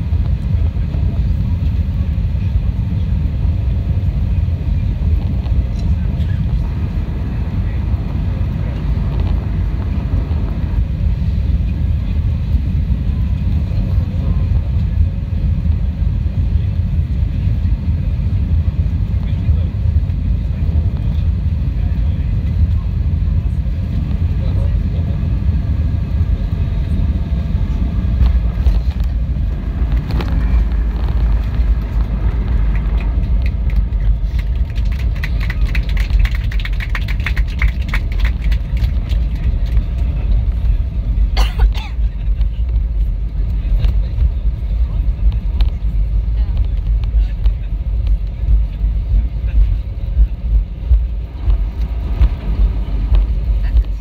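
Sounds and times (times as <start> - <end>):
aircraft cabin rumble: 0.0 - 54.0.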